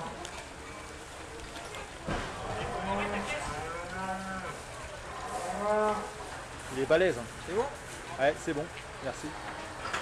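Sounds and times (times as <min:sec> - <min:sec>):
bull mooing: 0:05.2 - 0:06.2.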